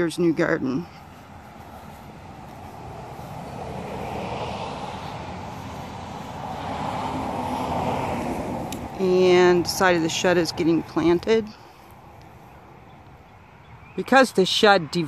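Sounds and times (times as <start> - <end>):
passing road traffic: 0.0 - 15.0.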